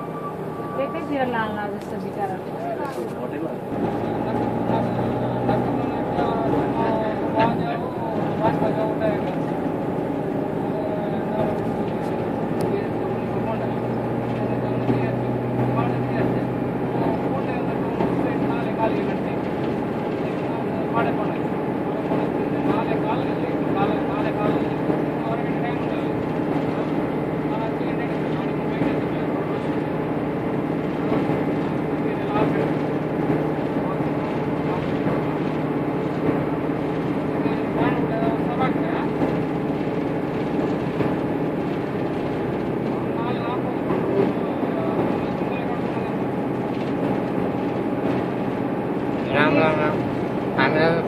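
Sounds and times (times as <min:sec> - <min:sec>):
people talking: 0:00.0 - 0:29.9, 0:31.1 - 0:35.5, 0:37.3 - 0:39.4, 0:43.0 - 0:46.4, 0:49.2 - 0:51.0
vehicle engine and road drone: 0:00.0 - 0:51.0.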